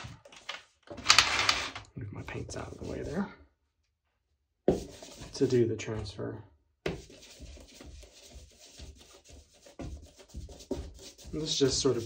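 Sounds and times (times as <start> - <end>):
foam brush rubbing strokes: 7.1 - 12.0.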